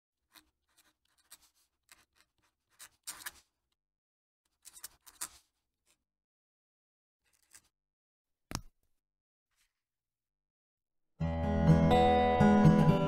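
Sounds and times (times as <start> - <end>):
pen nib scratching on paper: 0.3 - 3.5.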